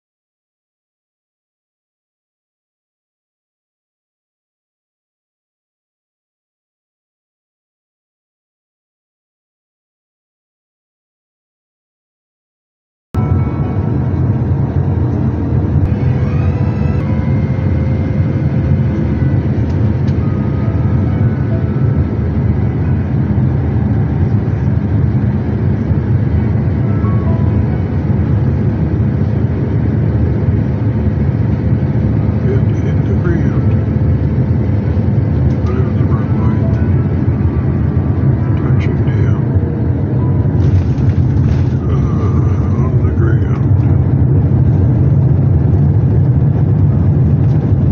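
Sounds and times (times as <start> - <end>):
airliner cabin rumble: 13.2 - 47.9.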